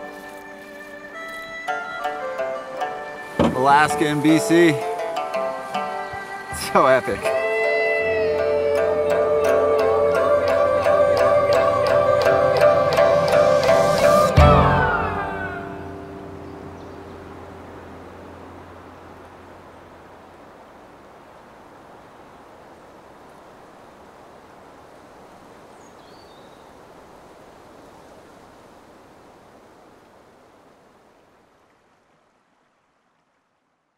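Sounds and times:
music: 0.0s - 17.2s
rushing river water: 0.0s - 33.9s.

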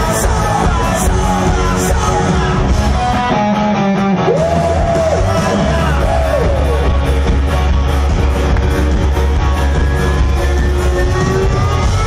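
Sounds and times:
electro-rock band playing live: 0.0s - 12.0s.

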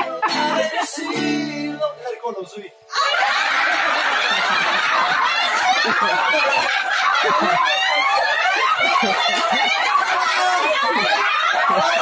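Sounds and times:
people laughing: 0.0s - 1.5s, 2.9s - 12.0s.

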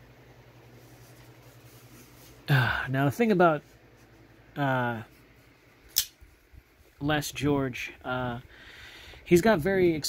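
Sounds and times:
folding knife click: 5.9s - 6.2s.

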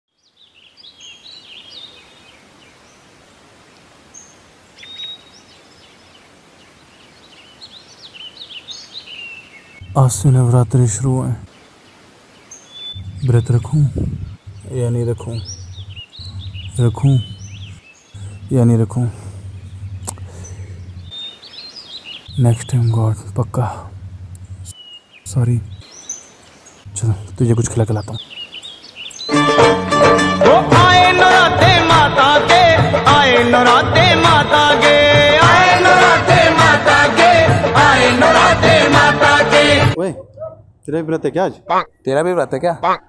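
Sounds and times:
small birds chirping: 0.1s - 3.2s, 3.8s - 29.4s
steady background hiss: 0.2s - 29.3s
steady low hum: 9.8s - 11.5s, 13.0s - 21.2s, 22.3s - 25.8s, 26.9s - 28.2s.

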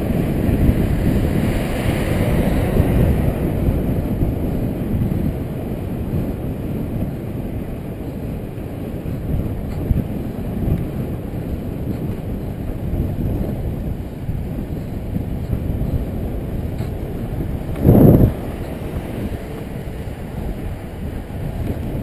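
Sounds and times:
wind rushing over microphone: 0.0s - 22.0s.

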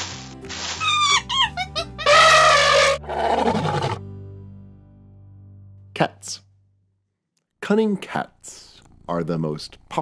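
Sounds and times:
held animal-like call: 0.8s - 4.0s.

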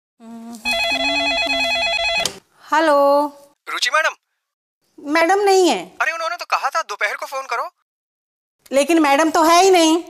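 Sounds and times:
telephone warbling ring: 0.7s - 2.4s.

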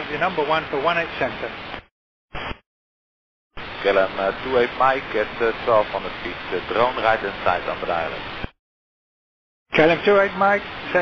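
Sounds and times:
radio transmission hiss: 0.0s - 2.6s, 3.6s - 8.6s, 9.8s - 11.0s
radio static burst: 1.2s - 2.6s, 3.6s - 8.6s
pilot speaking over radio: 3.8s - 8.2s.

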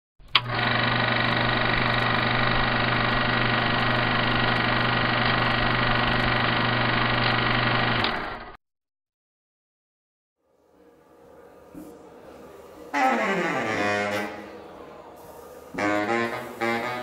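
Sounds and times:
click: 0.3s - 0.5s
machine hum drone: 0.3s - 8.6s.

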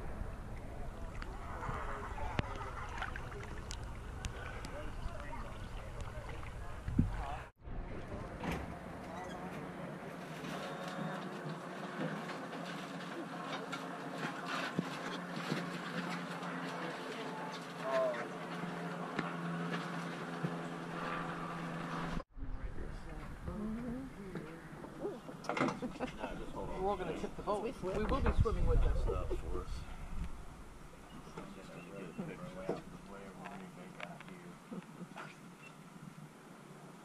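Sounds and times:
water splashing: 0.0s - 7.4s
steady low hum: 0.0s - 10.4s, 11.4s - 27.8s
indistinct voices: 22.5s - 27.0s.

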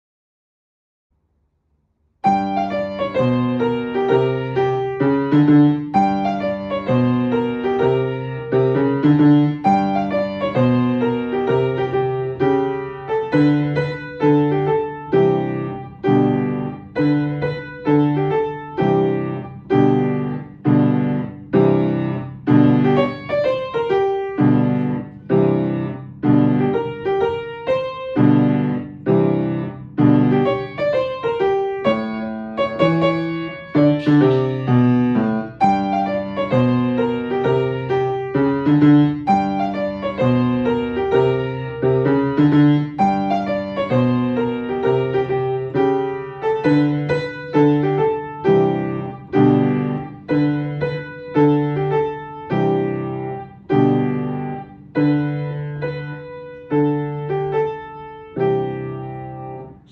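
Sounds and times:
piano melody and chords: 2.2s - 59.9s.

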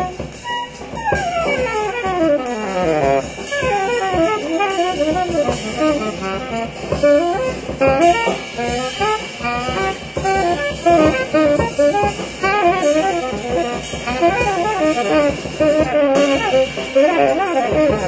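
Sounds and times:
drums: 0.0s - 18.0s
saxophone playing fast lines: 0.0s - 18.0s.

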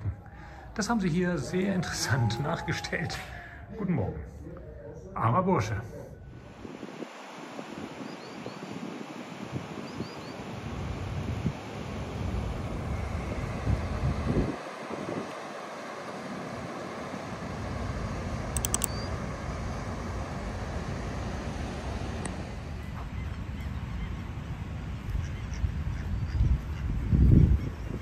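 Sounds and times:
wind gusting on microphone: 6.3s - 28.0s.

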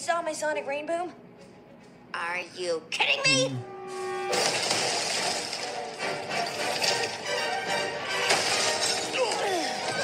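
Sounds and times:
film music through small speaker: 0.0s - 4.4s, 5.4s - 10.0s.

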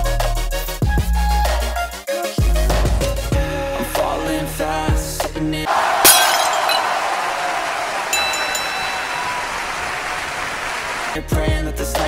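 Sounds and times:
glass shattering: 5.9s - 7.1s.

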